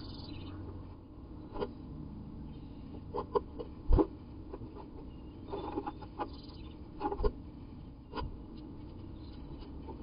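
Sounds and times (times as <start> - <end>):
bird feet scratching on wood: 3.0 - 6.4.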